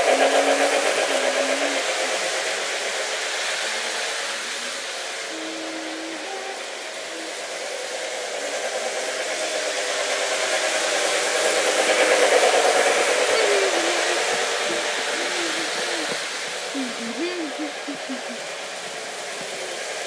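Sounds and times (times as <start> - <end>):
model train running on track: 0.0 - 20.0.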